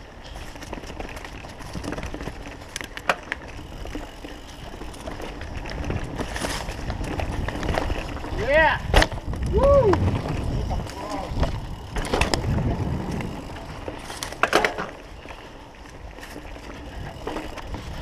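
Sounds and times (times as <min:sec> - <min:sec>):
bike chain and frame rattling: 0:00.0 - 0:18.0
bike tyres rumbling on dirt: 0:00.0 - 0:18.0.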